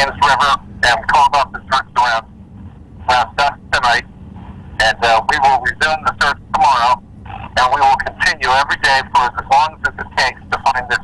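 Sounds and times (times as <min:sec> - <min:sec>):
man speaking over telephone: 0:00.0 - 0:02.3, 0:03.0 - 0:04.1, 0:04.8 - 0:11.0.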